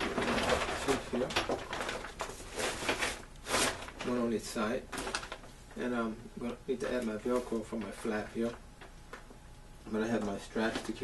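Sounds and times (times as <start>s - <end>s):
plastic tarp rustling: 0.0s - 5.5s.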